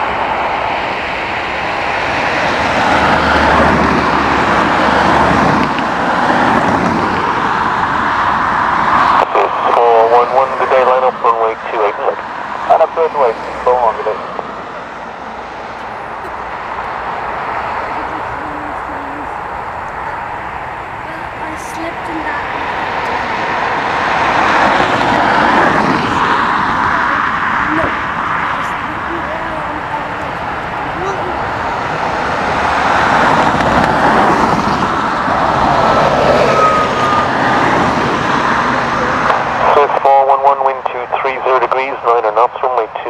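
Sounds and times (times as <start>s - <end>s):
jet engines taxiing: 0.0s - 43.0s.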